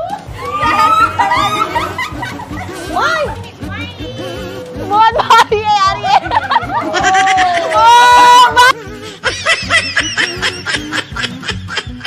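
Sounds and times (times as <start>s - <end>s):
women laughing: 0.0s - 3.4s, 4.2s - 12.0s.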